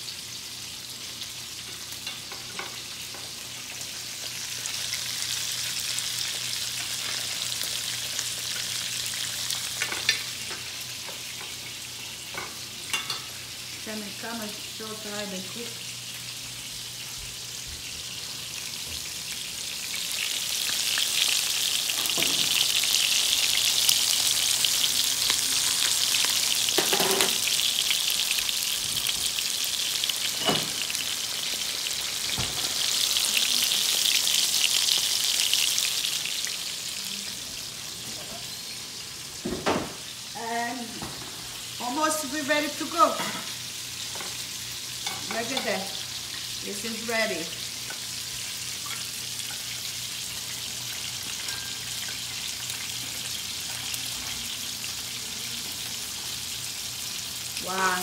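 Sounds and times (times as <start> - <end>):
meatballs sizzling in oil: 0.0 - 58.0.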